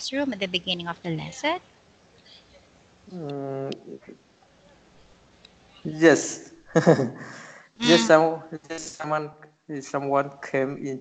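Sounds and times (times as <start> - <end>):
man's hesitation sound: 3.1 - 4.2, 7.4 - 9.0.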